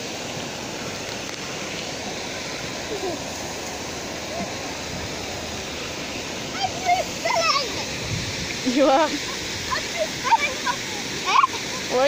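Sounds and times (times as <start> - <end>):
rushing water hiss: 0.0 - 12.0
child calling out: 6.5 - 7.9, 9.7 - 11.9.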